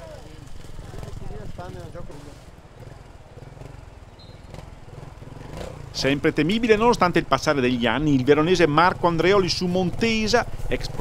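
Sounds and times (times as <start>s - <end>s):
motorcycle engine running: 0.0s - 11.0s.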